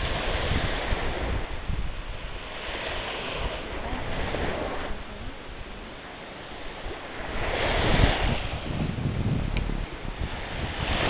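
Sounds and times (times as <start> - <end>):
small waves breaking on sand: 0.0 - 11.0
wind rumbling on microphone: 0.0 - 11.0.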